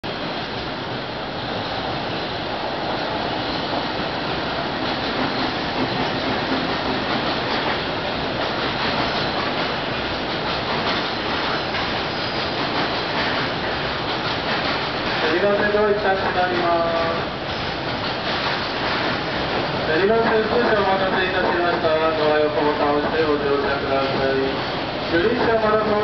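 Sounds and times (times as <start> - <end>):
steel wheels on rails: 2.9 - 26.0.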